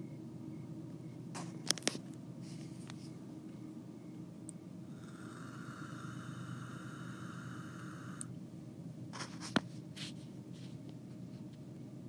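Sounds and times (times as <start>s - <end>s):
faint whirring hum: 0.0s - 12.0s.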